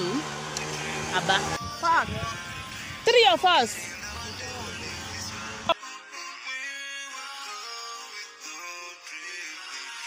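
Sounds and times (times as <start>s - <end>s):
woman speaking: 1.1s - 2.1s, 3.0s - 3.8s.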